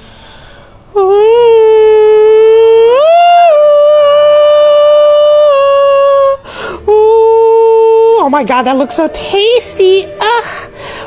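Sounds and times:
man singing in falsetto: 1.0s - 8.2s.

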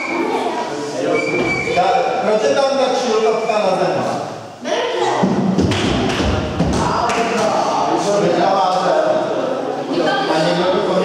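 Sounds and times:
children chattering: 0.0s - 4.0s, 4.6s - 5.4s, 6.9s - 11.0s.

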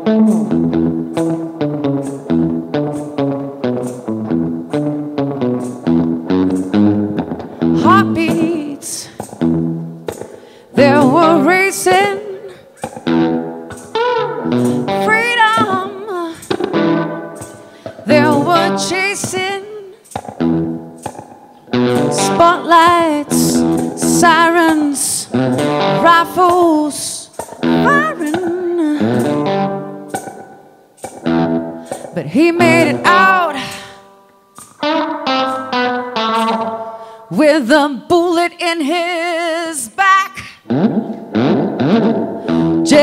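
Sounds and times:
guitar picking a riff: 0.0s - 43.0s
wailing lead with vibrato: 10.8s - 20.8s, 21.8s - 30.0s.

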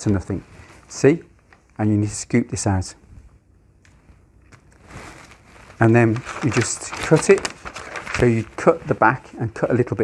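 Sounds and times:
paper rustling: 4.5s - 9.3s.

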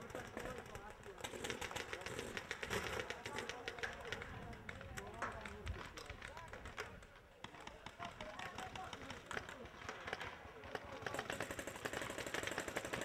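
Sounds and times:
paintball markers firing: 0.0s - 13.0s.

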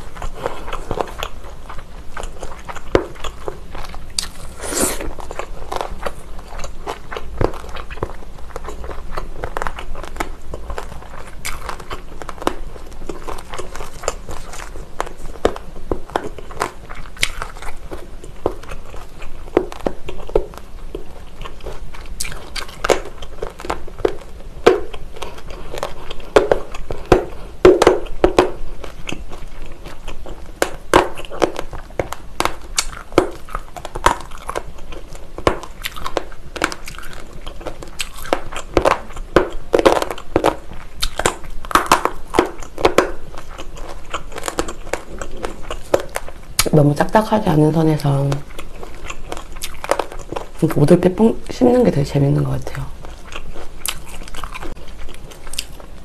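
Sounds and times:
chewing with wet crunches: 0.0s - 56.0s.

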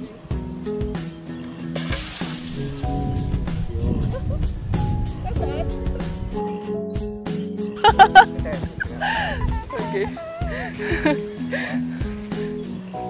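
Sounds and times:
background music: 0.0s - 13.0s
gas escaping in sharp hiss: 1.8s - 3.1s.

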